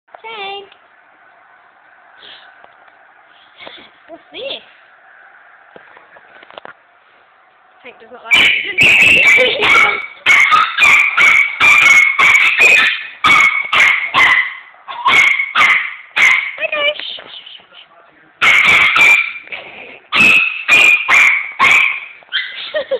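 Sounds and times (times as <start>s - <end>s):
dog whining: 8.3s - 11.1s
small dog yapping: 8.3s - 16.7s, 18.4s - 19.5s, 20.1s - 22.8s.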